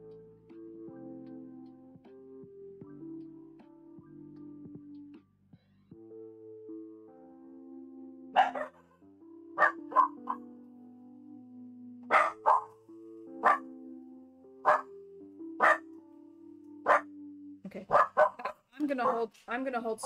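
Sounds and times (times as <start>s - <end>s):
background music: 0.0s - 20.0s
dog barking: 8.4s - 8.9s, 9.6s - 10.4s, 12.1s - 12.8s, 13.4s - 13.7s, 14.6s - 14.9s, 15.6s - 15.9s, 16.8s - 17.1s, 17.9s - 19.2s.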